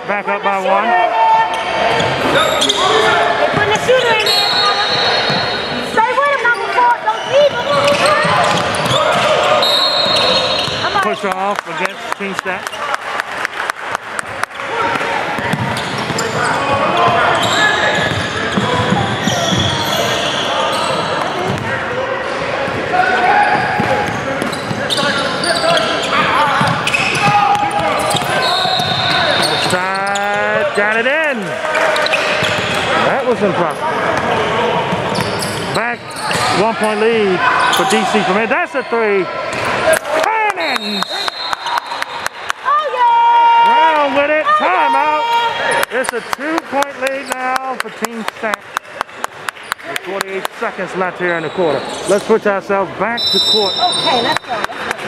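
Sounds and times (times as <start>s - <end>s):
people calling out: 0.6s - 11.1s, 39.9s - 41.8s, 42.6s - 45.8s
sneakers squeaking on court: 1.5s - 11.1s, 15.3s - 31.0s, 31.9s - 33.0s, 33.7s - 38.9s, 53.3s - 55.0s
basketball bouncing on wooden floor: 15.4s - 16.2s.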